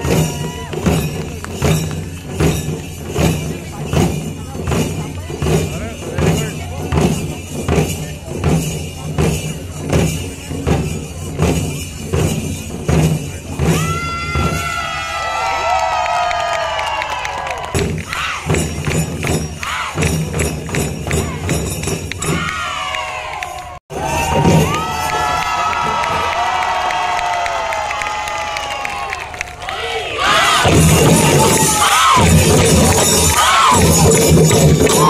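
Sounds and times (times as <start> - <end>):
crowd cheering: 0.0 - 2.4, 13.6 - 35.0
drums fast steady beat: 0.0 - 17.0, 17.6 - 23.0, 23.6 - 27.0, 30.3 - 35.0
people shouting: 13.7 - 18.6, 19.6 - 20.1, 22.2 - 29.0, 29.6 - 34.2.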